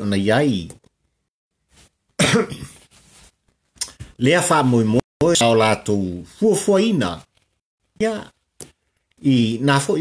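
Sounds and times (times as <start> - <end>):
man coughing: 2.2 - 2.8.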